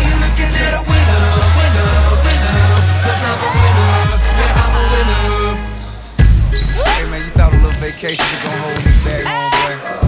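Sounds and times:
hip-hop backing music: 0.0 - 10.0.

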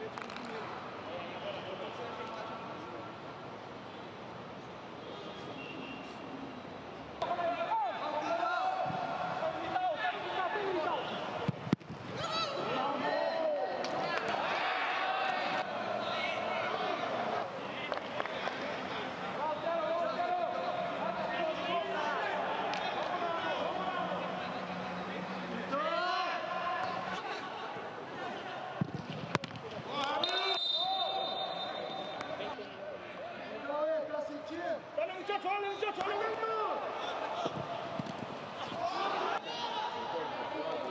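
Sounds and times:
footballers shouting: 7.2 - 11.5, 12.1 - 28.9, 29.7 - 40.9
ball kicks: 37.4 - 38.8.

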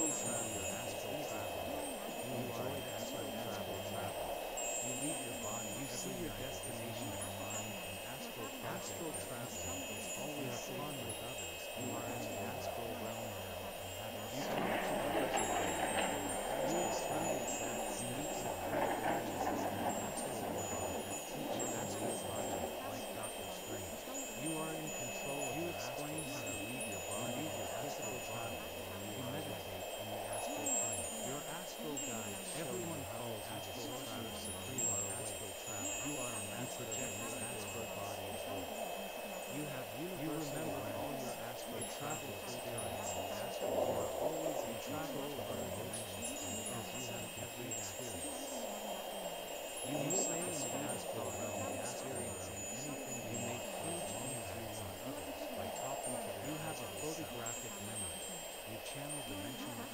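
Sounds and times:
faint low murmuring voice: 0.0 - 59.9
held high tones: 0.0 - 59.9
high chime-like ringing tones: 0.0 - 59.9
steady high drone: 0.0 - 59.9
steady low hum: 0.0 - 59.9.

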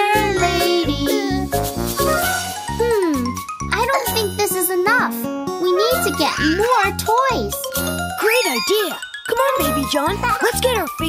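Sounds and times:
upbeat children's music: 0.0 - 11.0
cartoon children's voices speaking: 3.7 - 7.6, 8.2 - 10.8.

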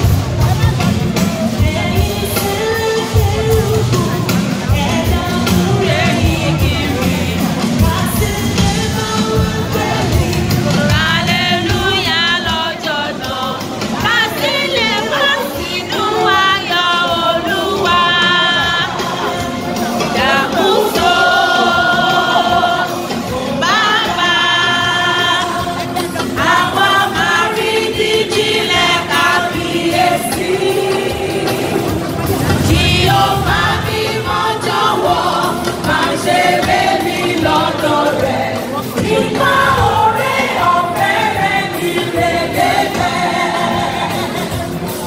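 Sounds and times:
large choir singing: 0.0 - 45.0.

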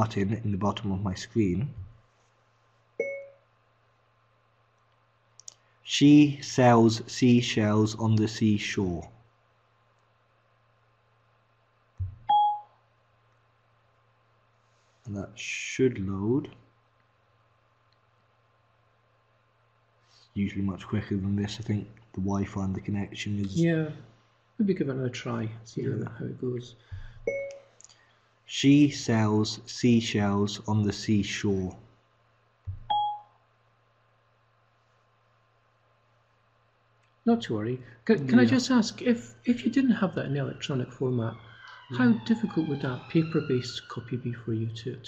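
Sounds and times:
faint low hum: 0.0 - 45.0
short tablet beep: 3.0 - 3.4, 12.0 - 12.7, 27.3 - 27.6, 32.7 - 33.3
low thump: 12.0 - 12.3, 32.7 - 32.9.

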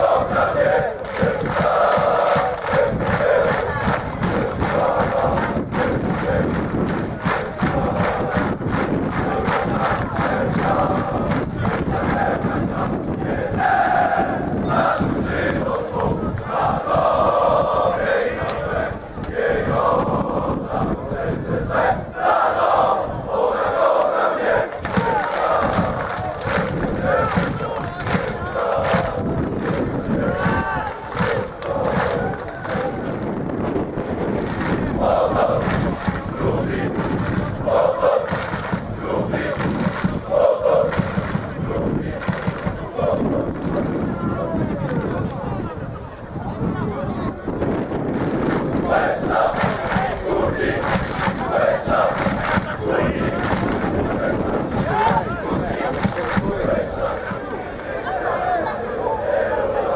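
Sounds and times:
crowd chanting in unison: 0.0 - 45.6, 48.1 - 59.9.

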